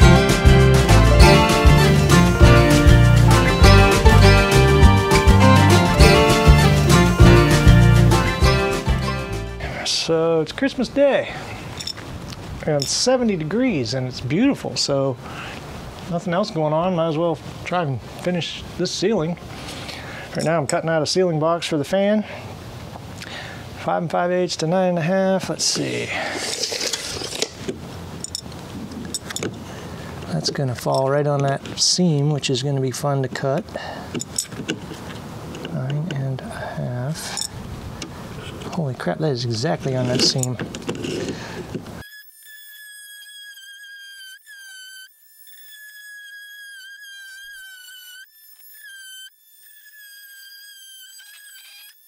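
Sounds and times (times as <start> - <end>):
oscillating multi-tool whining: 40.1 - 52.0.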